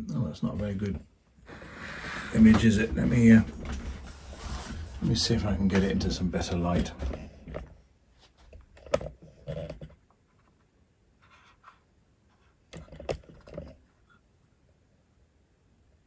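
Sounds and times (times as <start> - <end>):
handling noise scraping and rustling: 0.5 - 14.2.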